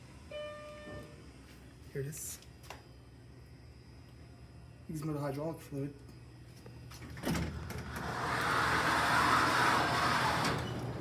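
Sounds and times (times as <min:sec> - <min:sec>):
steady low hum: 0:00.0 - 0:11.0
elevator doors sliding whoosh: 0:07.1 - 0:11.0.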